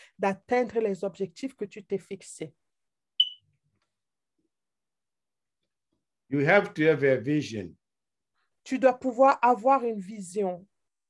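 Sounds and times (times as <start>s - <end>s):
short high electronic beep: 3.2s - 3.4s.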